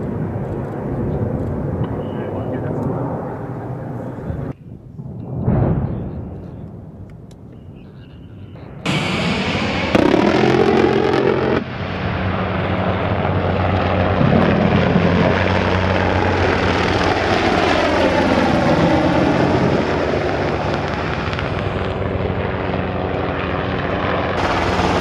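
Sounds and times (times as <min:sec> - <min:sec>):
jet flying low: 0:00.0 - 0:25.0.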